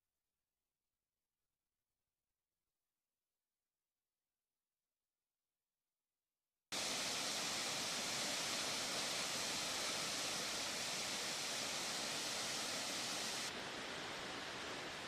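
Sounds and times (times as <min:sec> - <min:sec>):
stream flowing: 0:06.8 - 0:15.0
waterfall rushing: 0:06.8 - 0:15.0.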